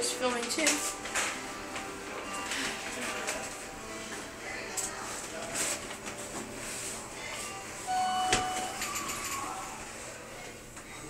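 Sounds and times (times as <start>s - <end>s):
elevator arrival chime: 7.8s - 9.4s.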